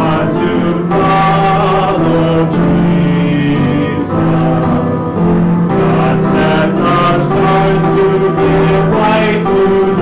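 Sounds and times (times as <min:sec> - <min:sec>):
congregation singing a hymn: 0:00.0 - 0:10.0
instrumental accompaniment: 0:00.0 - 0:10.0.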